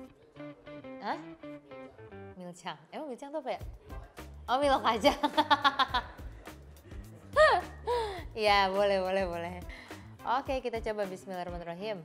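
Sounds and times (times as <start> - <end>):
guitar picking a light melody: 0.0 - 2.4.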